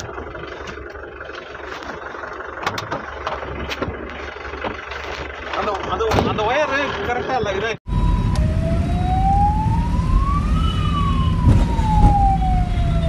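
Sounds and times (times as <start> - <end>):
road noise: 0.0 - 13.0
van engine running: 0.0 - 13.0.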